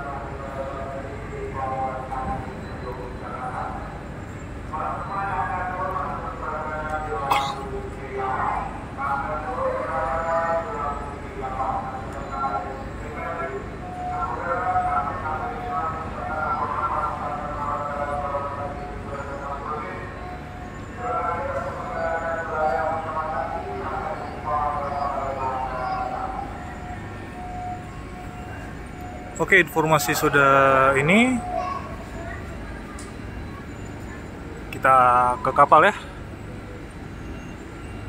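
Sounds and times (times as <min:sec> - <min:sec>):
loudspeaker announcement: 0:00.0 - 0:04.0, 0:04.6 - 0:36.2.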